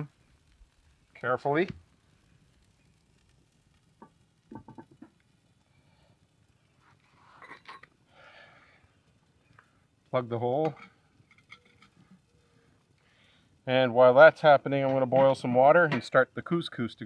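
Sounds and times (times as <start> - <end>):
flowerpot clicking on grill grate: 2.5 - 5.3.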